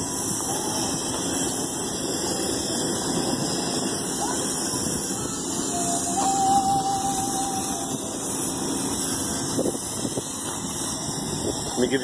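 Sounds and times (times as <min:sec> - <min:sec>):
thin steady whine: 0:00.0 - 0:12.0.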